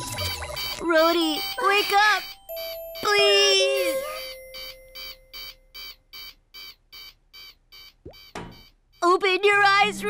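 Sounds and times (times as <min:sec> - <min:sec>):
electronic beeping: 0:00.0 - 0:09.1.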